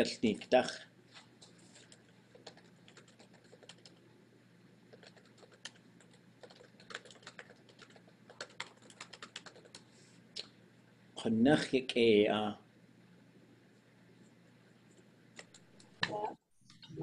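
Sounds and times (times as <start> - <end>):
faint keyboard typing: 1.4 - 4.1, 4.9 - 10.5, 15.3 - 16.0.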